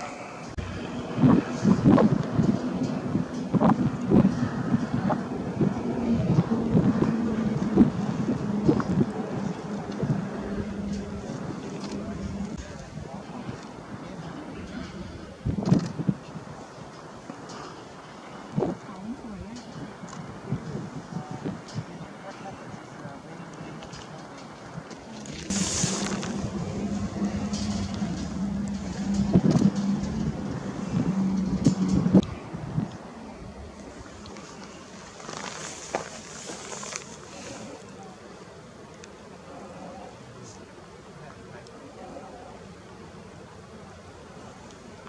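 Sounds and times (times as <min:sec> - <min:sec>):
wind buffeting microphone: 0:00.0 - 0:37.8
steady low hum: 0:25.2 - 0:45.0
short hiss: 0:25.5 - 0:26.5.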